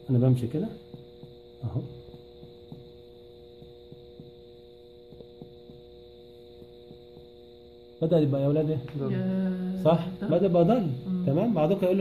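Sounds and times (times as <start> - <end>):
steady electrical hum: 0.0 - 12.0
finger percussion taps on abdomen: 0.8 - 7.6.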